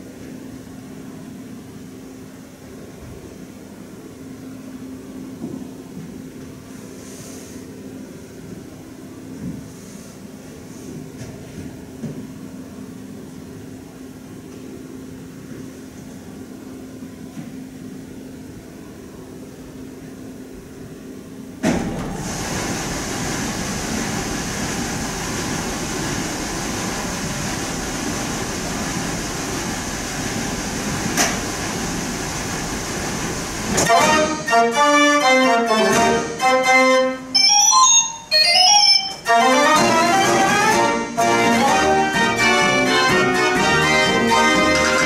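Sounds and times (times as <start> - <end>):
organ blower rushing air: 38.6 - 45.0.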